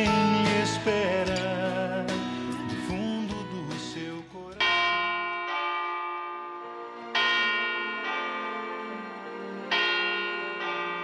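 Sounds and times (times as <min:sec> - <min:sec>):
bells ringing: 0:04.6 - 0:11.0.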